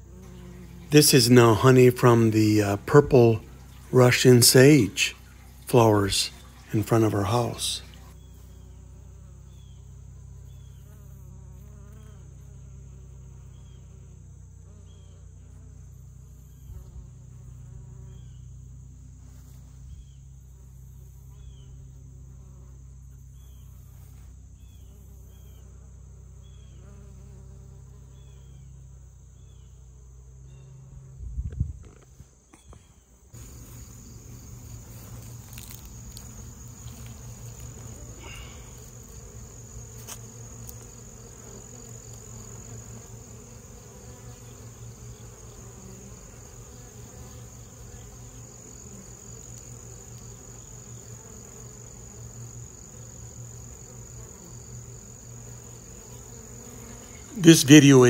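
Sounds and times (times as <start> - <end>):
honey bees buzzing: 0.0 - 31.2, 32.2 - 58.0
cricket trill: 0.0 - 58.0.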